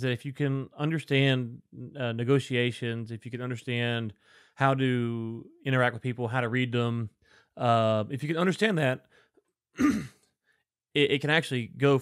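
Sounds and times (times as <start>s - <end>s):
man clearing his throat: 9.8s - 10.2s.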